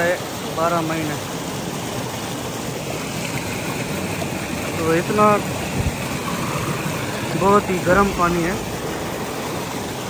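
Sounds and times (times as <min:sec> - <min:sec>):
water rushing over rocks: 0:00.0 - 0:10.0.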